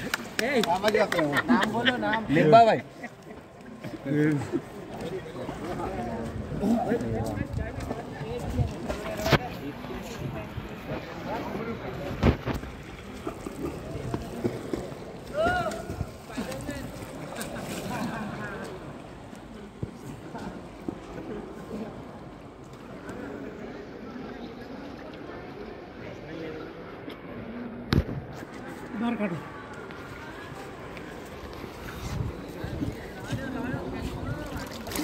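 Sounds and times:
water splashing from swimming: 0:00.0 - 0:02.2, 0:03.0 - 0:23.3, 0:30.5 - 0:35.0.

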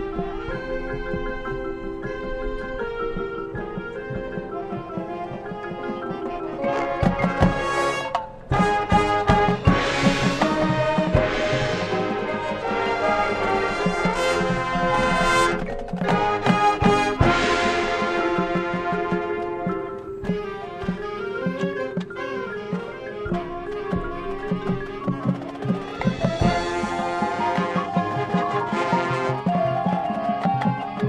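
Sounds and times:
drum hits: 0:00.0 - 0:22.3, 0:23.2 - 0:30.2
marching band brass chords: 0:00.0 - 0:31.0.

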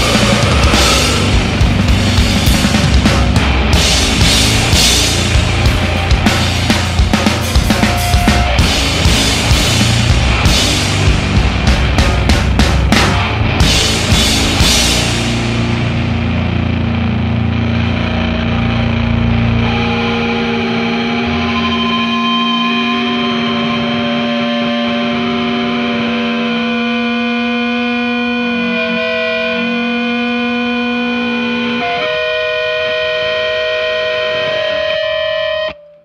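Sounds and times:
drums and bass: 0:00.0 - 0:35.7
electric guitar feedback: 0:00.0 - 0:36.0.

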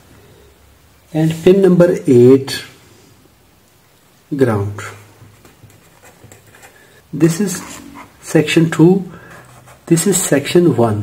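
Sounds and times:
low steady hum: 0:00.0 - 0:11.0
marker scratching on paper: 0:05.3 - 0:06.8, 0:07.4 - 0:08.4, 0:09.2 - 0:10.3.

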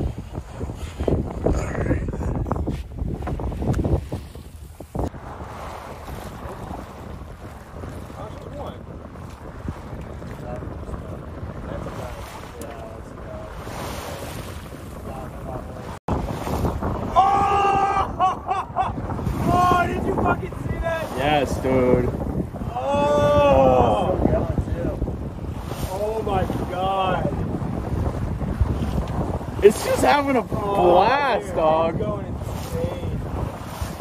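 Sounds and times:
water washing past hull: 0:00.0 - 0:34.0
wind buffeting microphone: 0:00.0 - 0:34.0.

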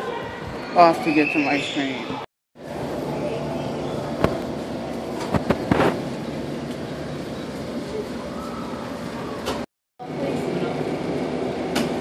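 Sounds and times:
steady mechanical hum: 0:02.0 - 0:12.0.

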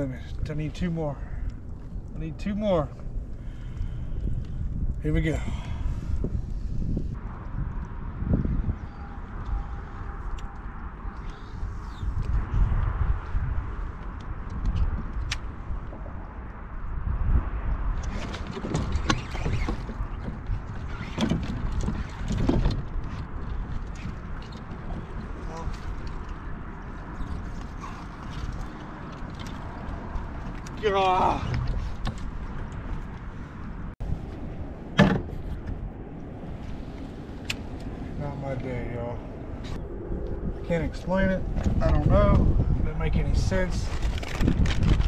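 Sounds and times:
wind buffeting microphone: 0:00.0 - 0:45.0.

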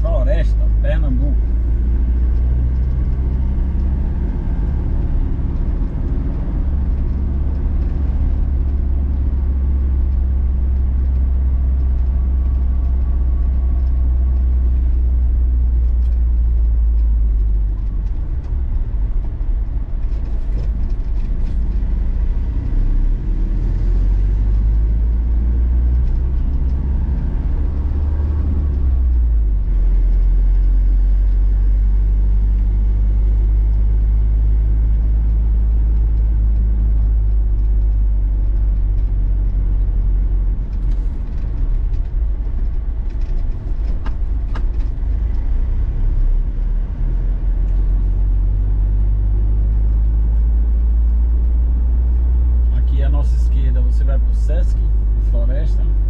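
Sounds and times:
road rumble: 0:00.0 - 0:56.0
vehicle engine: 0:00.0 - 0:56.0.

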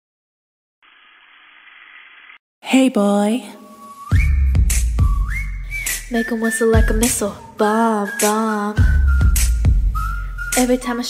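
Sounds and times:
whistled melody sliding up: 0:03.6 - 0:11.0
deep bass: 0:04.2 - 0:06.1, 0:06.8 - 0:07.3, 0:08.8 - 0:11.0.

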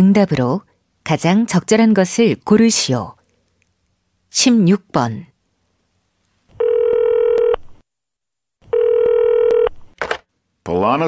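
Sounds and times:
telephone ringing tone: 0:06.6 - 0:07.6, 0:08.7 - 0:09.8.

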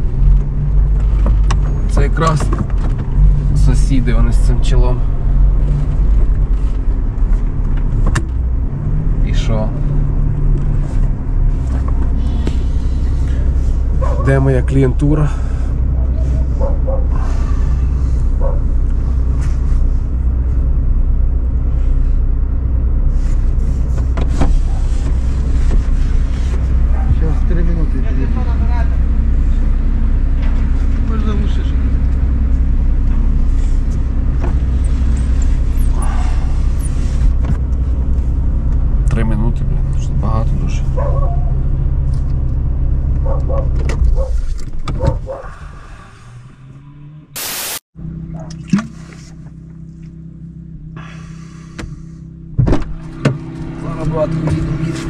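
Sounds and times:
car engine idling: 0:00.0 - 0:46.6, 0:48.0 - 0:55.0.

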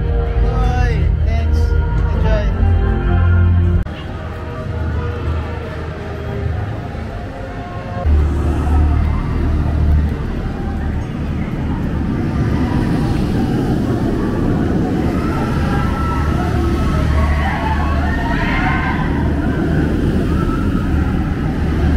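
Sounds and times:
faint voices: 0:03.9 - 0:21.9
loud low rumble: 0:08.0 - 0:21.9.

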